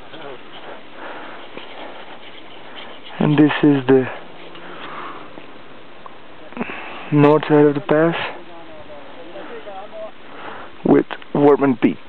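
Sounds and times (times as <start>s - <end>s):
steady hiss: 0.0s - 12.0s
person breathing close to microphone: 0.6s - 2.9s, 4.1s - 5.4s, 10.2s - 10.8s.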